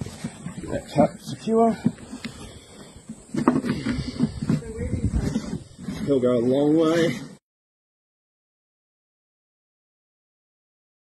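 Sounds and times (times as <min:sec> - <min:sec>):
knocks and scrapes on plastic drum: 0:03.2 - 0:07.4.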